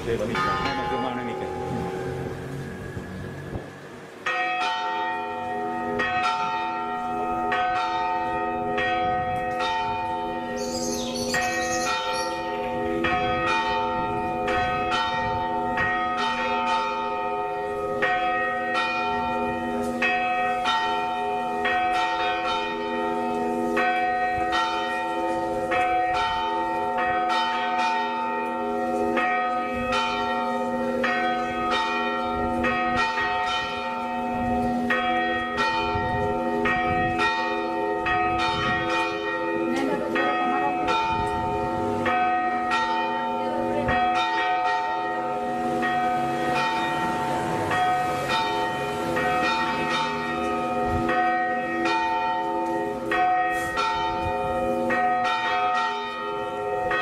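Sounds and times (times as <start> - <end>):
church bells pealing: 0.0 - 57.0.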